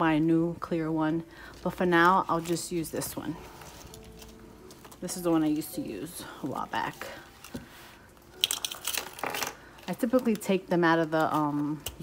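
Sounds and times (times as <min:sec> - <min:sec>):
plastic envelopes crinkling: 0:01.4 - 0:12.0.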